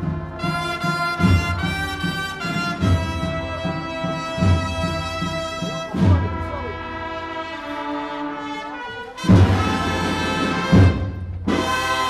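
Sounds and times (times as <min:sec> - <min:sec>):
brass band sustained chord: 0:00.0 - 0:12.0
steady drum beat: 0:00.0 - 0:12.0.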